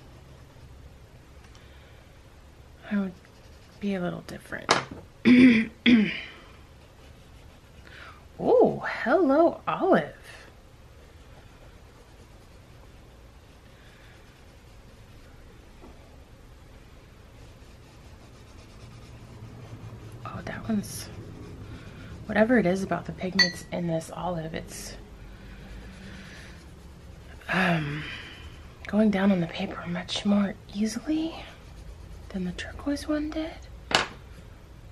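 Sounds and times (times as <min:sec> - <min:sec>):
crayon scratching on paper: 0:02.8 - 0:04.5, 0:11.6 - 0:13.0, 0:17.3 - 0:23.3, 0:25.6 - 0:33.4
person clearing throat: 0:05.2 - 0:06.3.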